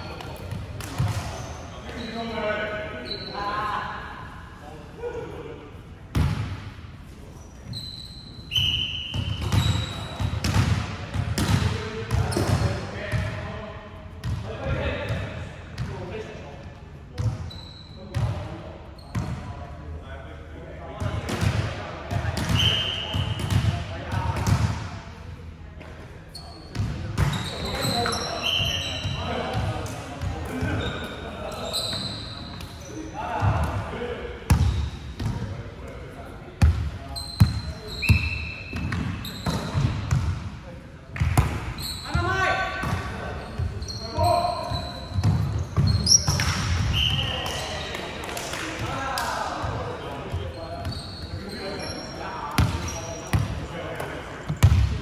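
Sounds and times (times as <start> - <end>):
sneakers squeaking on wooden court: 0.0 - 3.4, 7.4 - 13.3, 17.2 - 18.4, 19.0 - 19.5, 26.3 - 33.8, 34.5 - 35.4, 36.6 - 40.4, 41.2 - 48.2, 49.7 - 55.0
players talking and calling: 0.0 - 55.0.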